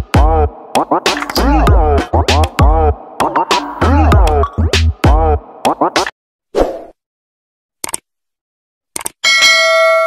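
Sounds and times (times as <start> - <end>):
small clicks: 7.8 - 8.0, 9.0 - 9.2
bell ding: 9.2 - 10.0.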